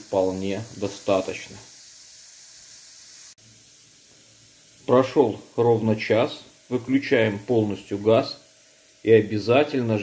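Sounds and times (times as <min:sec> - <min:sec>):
steam hissing from pressure cooker: 0:00.0 - 0:10.0.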